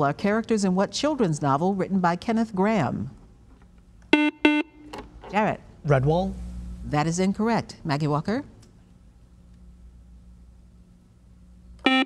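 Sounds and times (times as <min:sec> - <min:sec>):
quiz show buzzer: 0:04.1 - 0:04.8, 0:11.8 - 0:12.0.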